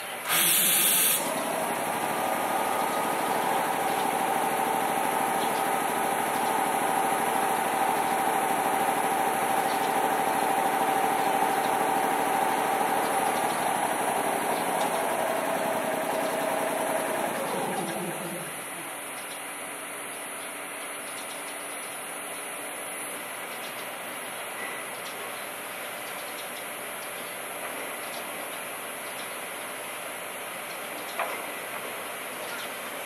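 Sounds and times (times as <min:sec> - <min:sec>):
air compressor running: 0:00.0 - 0:19.0.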